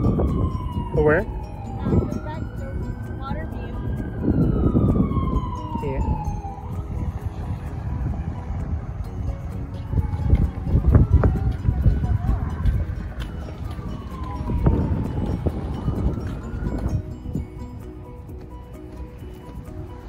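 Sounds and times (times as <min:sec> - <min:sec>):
siren wailing: 0:00.0 - 0:18.2.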